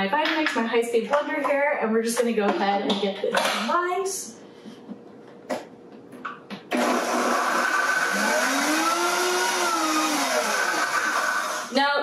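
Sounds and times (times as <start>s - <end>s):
blender motor running: 6.7s - 11.8s.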